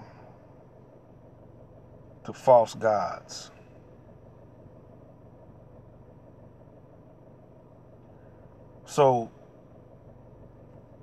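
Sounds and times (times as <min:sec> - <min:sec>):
faint low cabin hum: 0:00.0 - 0:11.0.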